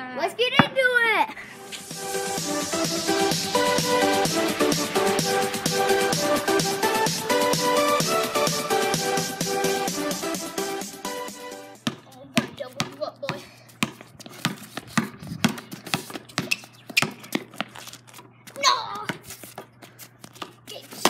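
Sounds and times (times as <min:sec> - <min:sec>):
child's voice: 0:00.0 - 0:01.4, 0:12.0 - 0:13.6, 0:18.5 - 0:19.2, 0:20.6 - 0:21.0
basketball bouncing on concrete: 0:00.5 - 0:00.9, 0:11.8 - 0:21.0
electronic music: 0:01.6 - 0:11.8.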